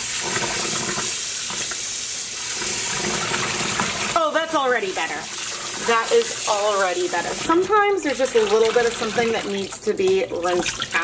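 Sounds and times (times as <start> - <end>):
tap running into basin: 0.0 - 1.9, 2.5 - 4.2, 5.0 - 11.0
water splashing and sloshing: 4.8 - 11.0.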